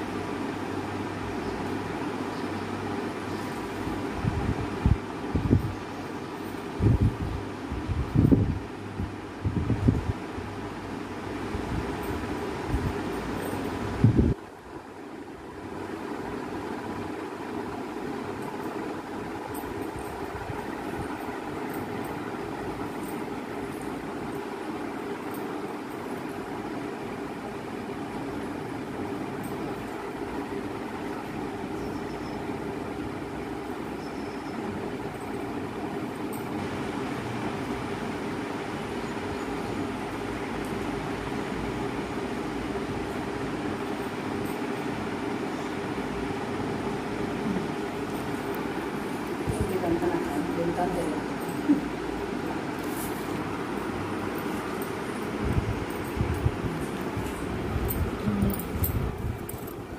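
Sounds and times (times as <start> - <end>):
mechanical hum: 0.0 - 59.9.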